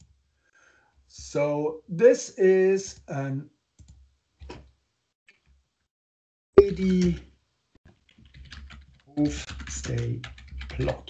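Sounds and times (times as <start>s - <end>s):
computer keyboard typing: 6.6s - 7.2s, 7.9s - 11.0s.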